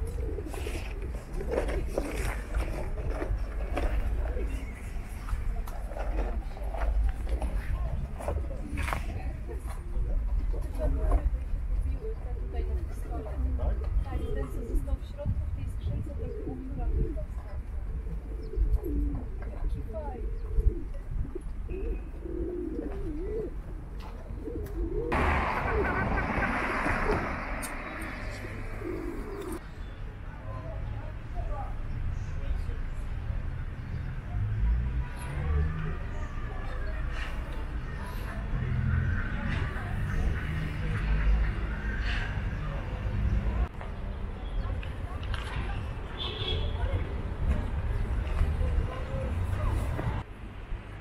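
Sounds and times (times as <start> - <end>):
pigeons cooing: 0.0 - 10.4, 16.0 - 29.6.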